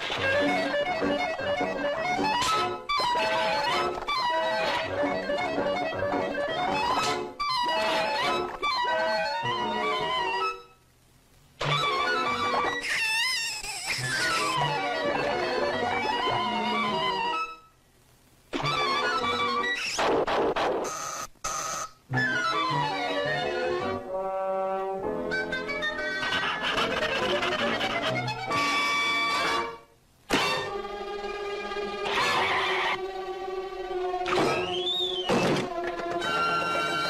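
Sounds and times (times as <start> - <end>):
orchestral cartoon music with brass: 22.2 - 34.7, 35.4 - 37.0.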